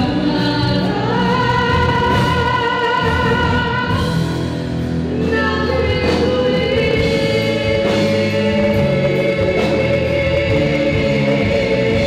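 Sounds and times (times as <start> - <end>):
keyboard accompaniment: 0.0 - 12.0
women singing a duet: 0.0 - 12.0.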